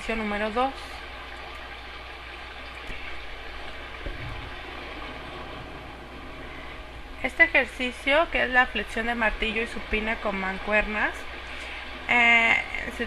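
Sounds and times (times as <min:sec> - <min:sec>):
constant low hum: 0:00.0 - 0:13.0.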